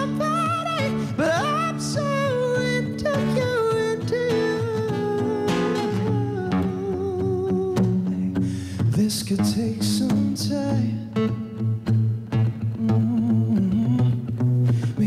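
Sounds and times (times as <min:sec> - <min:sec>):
man singing pop song: 0:00.0 - 0:11.7, 0:12.7 - 0:15.0
acoustic guitar chords: 0:00.0 - 0:15.0.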